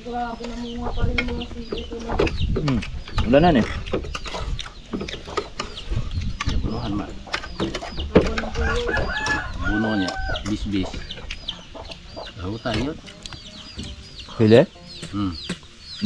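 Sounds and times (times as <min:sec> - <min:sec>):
chickens clucking: 0:00.0 - 0:16.0
rooster crowing: 0:08.6 - 0:10.5.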